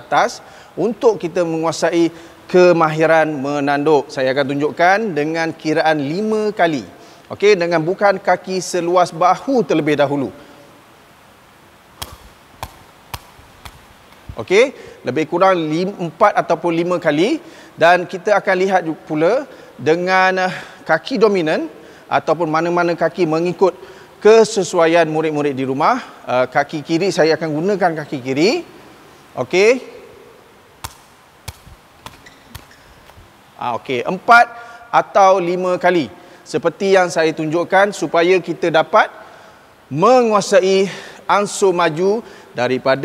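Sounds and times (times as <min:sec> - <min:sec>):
ball being headed: 0:12.0 - 0:14.4, 0:30.8 - 0:33.3.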